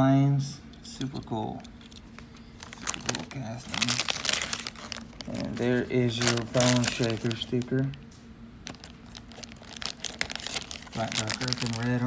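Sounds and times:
foil wrapper crinkling: 0:02.0 - 0:08.0, 0:08.6 - 0:12.0.

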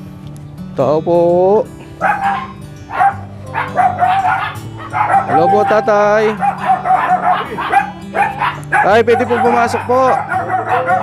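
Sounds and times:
background music: 0:00.0 - 0:11.0
dog barking: 0:02.0 - 0:11.0.

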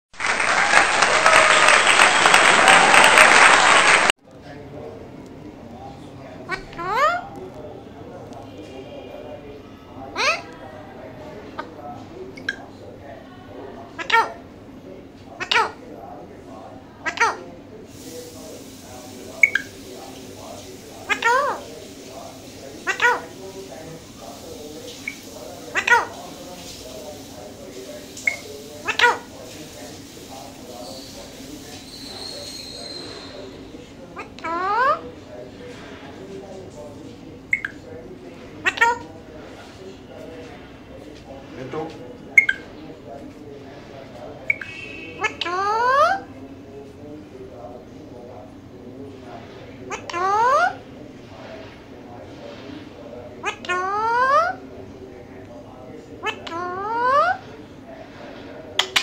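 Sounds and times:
parakeet calls: 0:10.1 - 0:10.5, 0:14.0 - 0:14.4, 0:15.4 - 0:15.8, 0:17.0 - 0:17.4, 0:19.4 - 0:24.2, 0:24.9 - 0:33.6, 0:34.2 - 0:35.0, 0:37.5 - 0:37.8, 0:38.6 - 0:39.0, 0:42.4 - 0:42.8, 0:44.5 - 0:46.3, 0:49.9 - 0:50.8, 0:53.4 - 0:54.6, 0:56.2 - 0:57.4
parakeet mumbling softly: 0:14.0 - 0:14.4, 0:15.4 - 0:15.8, 0:17.0 - 0:17.4, 0:21.0 - 0:21.7, 0:22.8 - 0:23.4, 0:24.9 - 0:26.4, 0:38.6 - 0:39.1.

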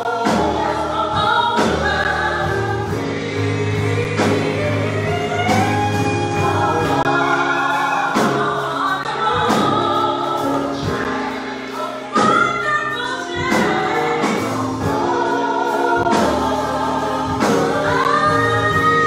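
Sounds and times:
group singing gospel: 0:00.0 - 0:19.0
instrumental accompaniment: 0:00.0 - 0:19.0.

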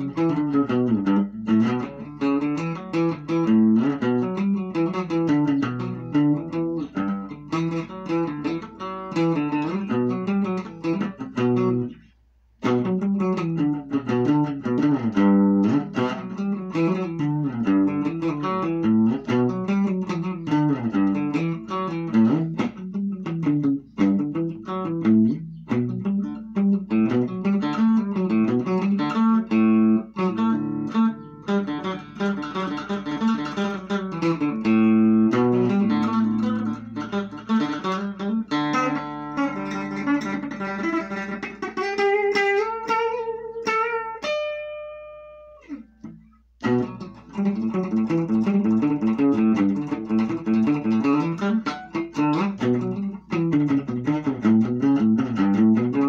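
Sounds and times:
electric guitar playing: 0:00.0 - 0:56.0.

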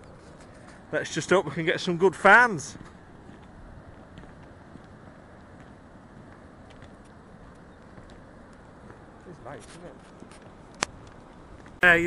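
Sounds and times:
distant surf: 0:00.0 - 0:12.0
footsteps on path: 0:02.6 - 0:11.8.

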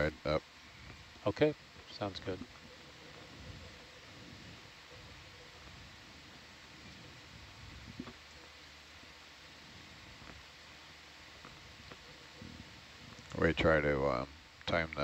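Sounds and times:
faint background hiss: 0:00.0 - 0:15.0.

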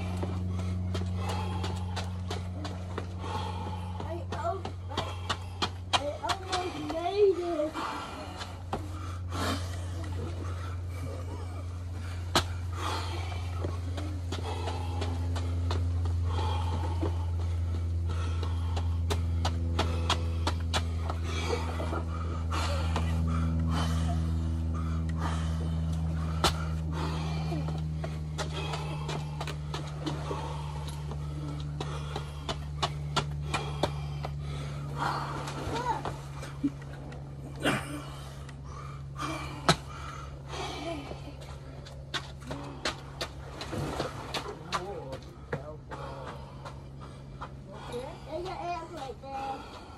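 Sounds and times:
low mechanical hum: 0:00.0 - 0:49.9.

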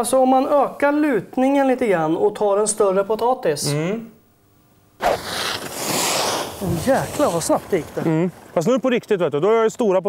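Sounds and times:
skis hissing over snow: 0:05.0 - 0:08.0.

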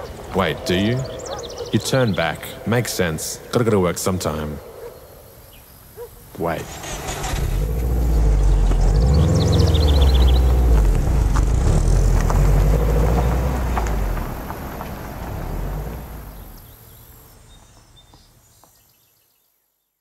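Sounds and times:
car engine driving away: 0:06.6 - 0:16.8.

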